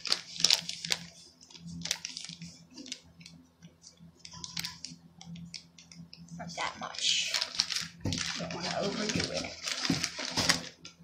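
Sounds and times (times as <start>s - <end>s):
paper bag crinkling: 0.0s - 3.4s, 4.2s - 5.7s, 6.8s - 11.0s.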